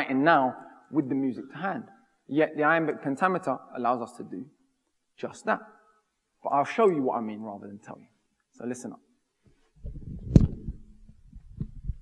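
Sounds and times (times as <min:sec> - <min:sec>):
microphone handling noise: 0:09.5 - 0:12.0.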